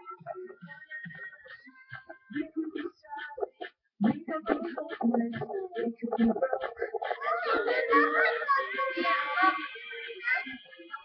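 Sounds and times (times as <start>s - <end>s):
high-pitched young voice singing: 0.0s - 11.0s.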